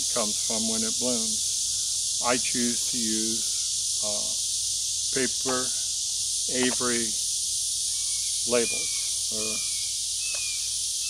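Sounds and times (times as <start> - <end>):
insects droning: 0.0 - 11.0.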